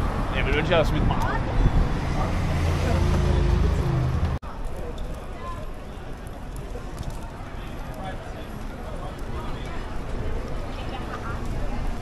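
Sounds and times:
vehicle engine rumbling: 0.0 - 5.3.

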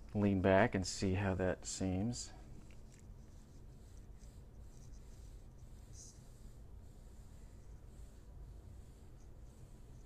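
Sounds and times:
pencil scratching on paper: 2.6 - 10.0.

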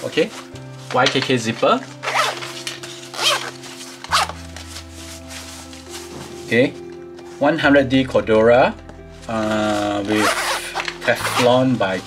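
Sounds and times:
zipper being pulled: 2.0 - 4.4, 9.7 - 11.6.

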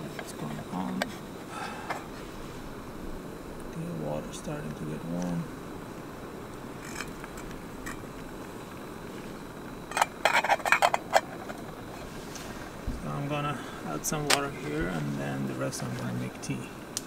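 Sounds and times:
steady background hiss: 0.0 - 17.0.

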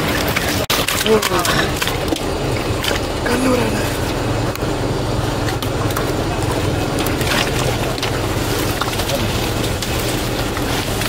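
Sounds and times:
water pump humming: 0.0 - 11.0.

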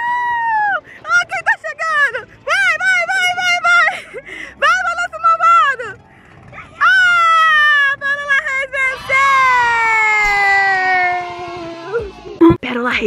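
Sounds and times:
long falling whine: 8.7 - 12.4.

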